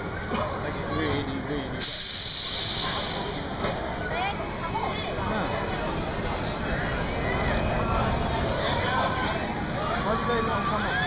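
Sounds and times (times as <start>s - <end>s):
low rumble of ride machinery: 0.0s - 11.0s
loud hiss of water spray: 1.8s - 3.2s.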